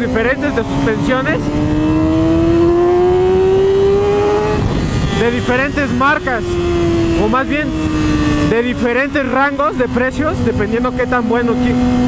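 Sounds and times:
wind rush: 0.0 - 12.0.

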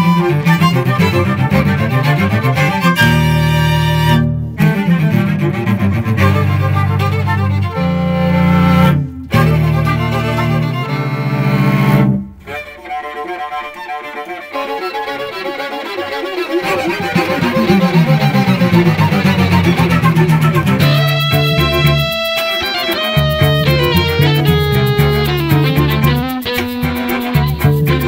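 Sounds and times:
string quartet playing jazz: 0.0 - 28.0.

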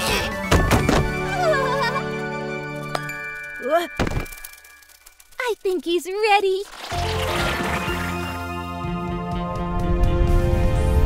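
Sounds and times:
cartoon background music: 0.0 - 2.9
quick thunks: 0.4 - 1.2.

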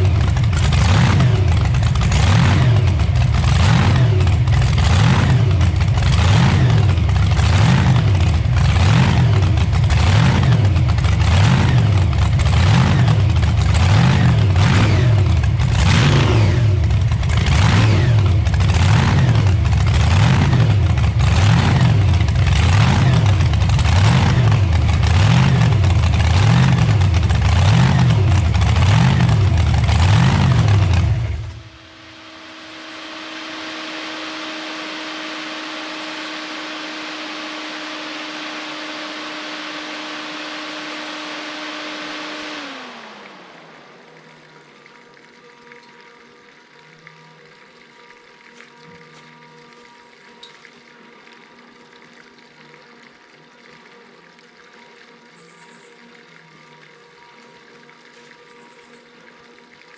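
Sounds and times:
hot rod engine revving: 0.0 - 45.2
steady hum winding down: 0.0 - 59.9.

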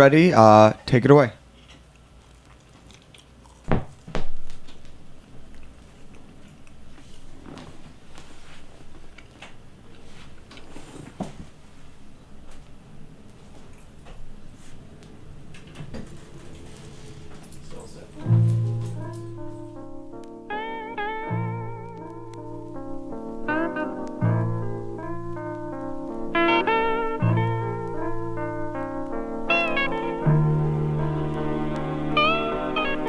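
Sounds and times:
guitar low chord: 18.2 - 33.0.

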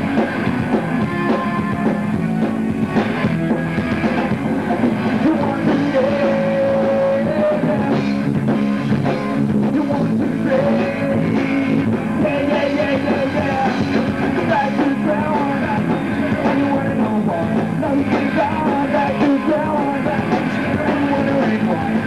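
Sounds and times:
drum kit: 0.0 - 22.0
electric guitars: 0.0 - 22.0
person singing: 4.5 - 8.3, 9.5 - 22.0.

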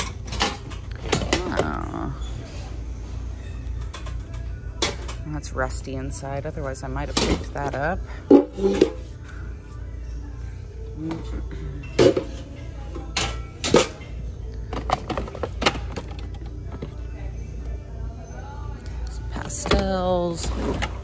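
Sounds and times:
background music: 0.0 - 21.0
items clattering in plastic bin: 14.7 - 17.0.

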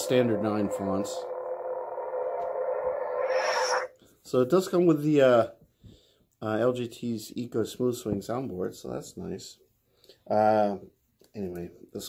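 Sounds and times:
lightsaber blade hum: 0.0 - 3.9
lightsaber retraction sound: 0.0 - 3.9.

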